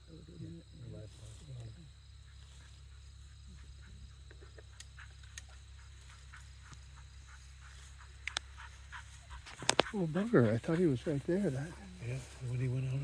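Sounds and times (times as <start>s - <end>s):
sharp clicks: 8.2s - 8.5s.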